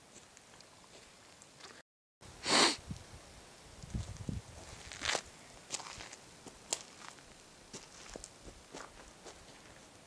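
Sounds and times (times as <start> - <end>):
footsteps on dry dirt: 3.9 - 10.0.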